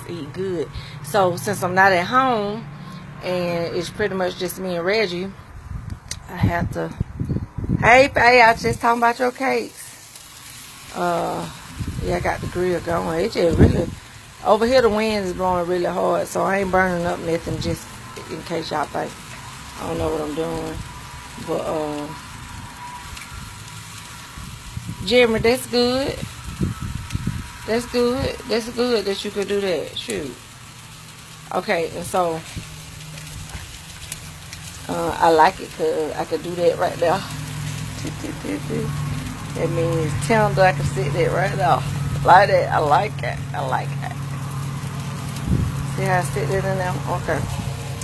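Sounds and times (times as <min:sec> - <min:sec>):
wind rumble on microphone: 0:00.0 - 0:09.7, 0:10.9 - 0:30.4, 0:34.8 - 0:48.0
ribs sizzling on grill: 0:00.0 - 0:48.0.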